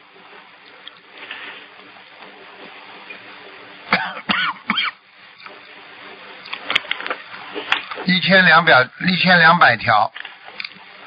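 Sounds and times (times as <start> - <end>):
faint steady hiss: 0.0 - 11.0
person coughing: 3.9 - 5.0.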